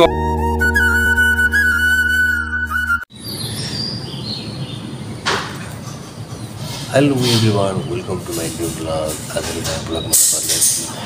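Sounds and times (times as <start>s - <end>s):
flute background music: 0.0s - 3.1s
birds chirping: 3.1s - 11.0s.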